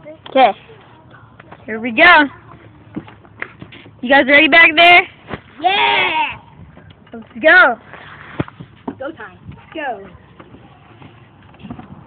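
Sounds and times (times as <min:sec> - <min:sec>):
cart wheels rumbling on pavement: 0:06.6 - 0:12.0.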